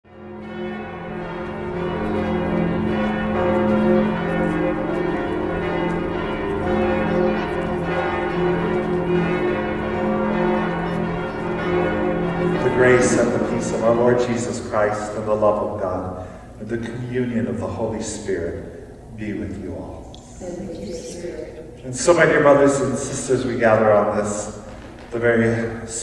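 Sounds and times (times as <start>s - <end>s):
church bells pealing: 0.1s - 19.9s, 21.6s - 26.0s.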